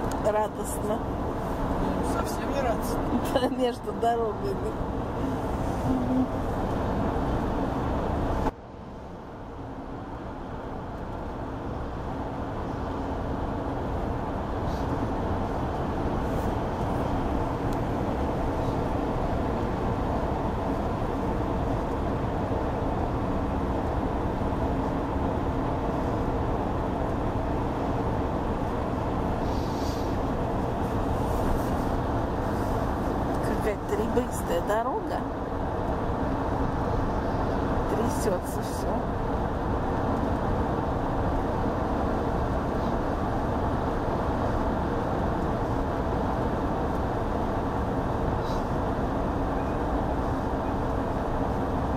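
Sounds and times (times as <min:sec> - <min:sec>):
car road and engine noise: 0:00.0 - 0:51.9.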